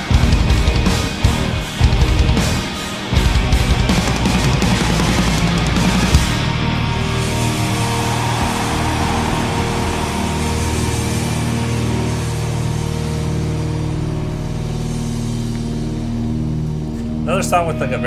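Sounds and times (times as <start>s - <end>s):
heavy rock band held chord: 0.0s - 17.9s.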